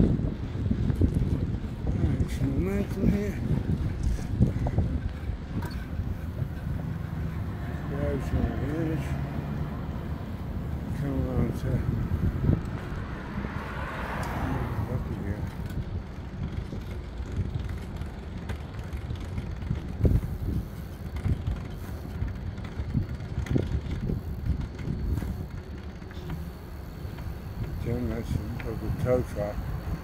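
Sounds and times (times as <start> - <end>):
bicycle knocks and rattles: 0.0 - 9.0, 14.8 - 30.0
wind rumbling on microphone: 0.0 - 30.0.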